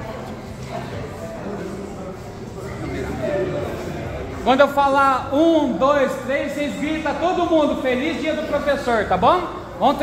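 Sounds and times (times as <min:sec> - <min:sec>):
background chatter of people: 0:00.0 - 0:10.0.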